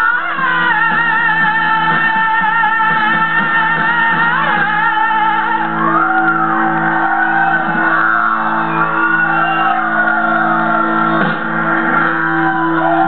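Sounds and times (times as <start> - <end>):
person singing wordless notes: 0.0 - 8.3
live rock band playing: 0.0 - 13.0.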